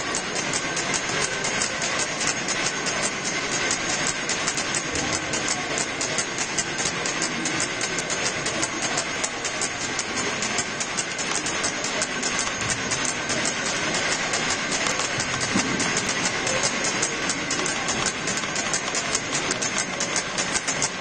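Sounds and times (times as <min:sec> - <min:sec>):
crowd hubbub in a church: 0:00.0 - 0:21.0
rapid even clicking: 0:00.0 - 0:21.0.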